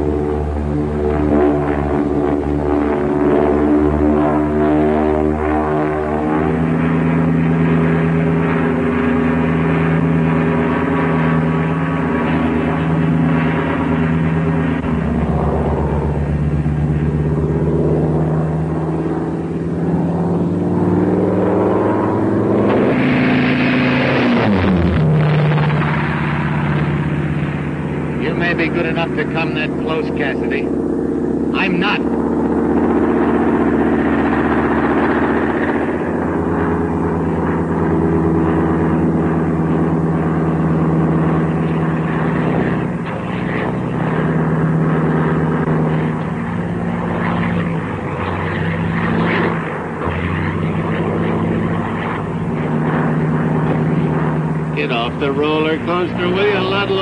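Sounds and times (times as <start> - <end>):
propeller aircraft in flight: 0.0 - 57.0.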